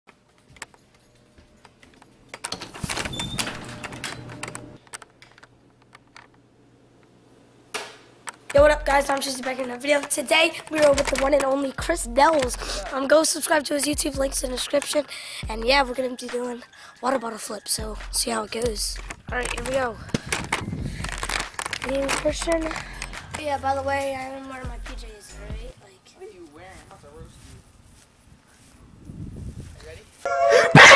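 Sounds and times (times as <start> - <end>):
door being handled: 2.3 - 5.3
boy speaking: 8.5 - 20.1, 21.8 - 26.6
handheld camera clicks and knocks: 10.8 - 11.6, 18.6 - 23.4.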